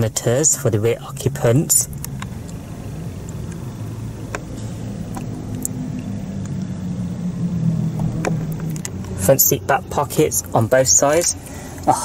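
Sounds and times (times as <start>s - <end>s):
low hum in car cabin: 0.0s - 12.0s.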